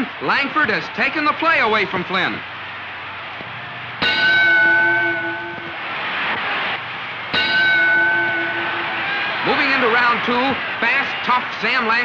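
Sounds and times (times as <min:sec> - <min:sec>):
boxing ring bell ringing: 0:04.0 - 0:05.8, 0:07.3 - 0:09.6.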